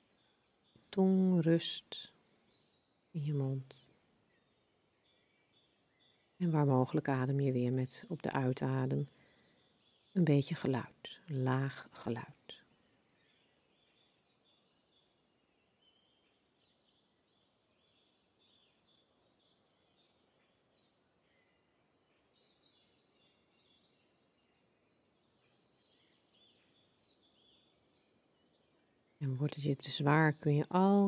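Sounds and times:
faint birdsong chirps and whistles: 0.0s - 31.0s.

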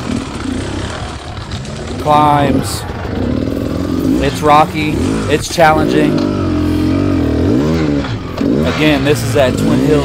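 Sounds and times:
dirt bike engine at low revs: 0.0s - 10.0s
wind and riding noise: 0.0s - 10.0s.

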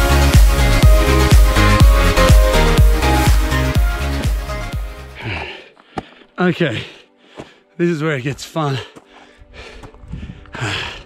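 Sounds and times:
man breathing hard: 5.0s - 7.7s, 8.8s - 11.0s
faint background music: 6.3s - 11.0s.

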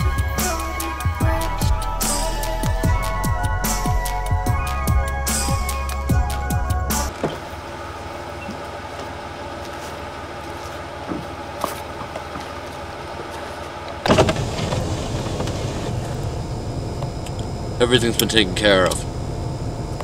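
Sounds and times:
car engine running: 0.0s - 8.0s, 14.0s - 20.0s.

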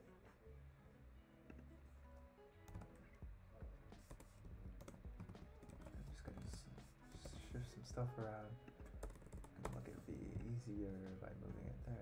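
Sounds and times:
faint background music: 0.0s - 12.0s
computer keyboard typing: 2.7s - 3.1s, 4.0s - 7.5s, 8.7s - 10.6s.

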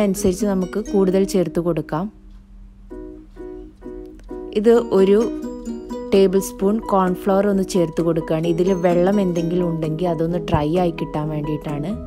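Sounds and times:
low steady hum: 0.0s - 12.0s
plucked string melody: 2.8s - 12.0s.

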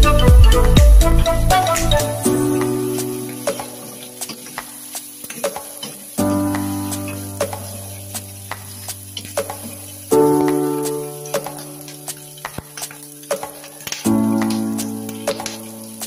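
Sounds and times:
music with long held chords: 0.0s - 5.0s
squid frying in a wok: 2.3s - 16.0s.

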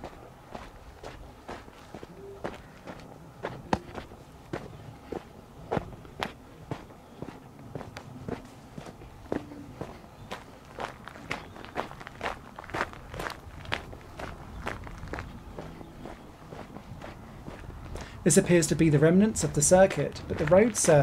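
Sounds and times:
footsteps on gravel: 0.0s - 21.0s.

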